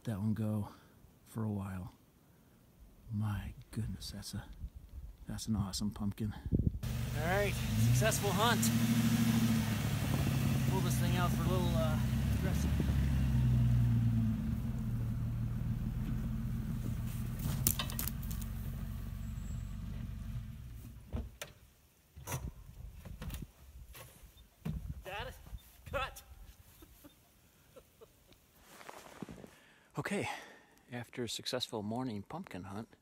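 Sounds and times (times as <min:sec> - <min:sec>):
car engine rumble: 0:06.8 - 0:21.4.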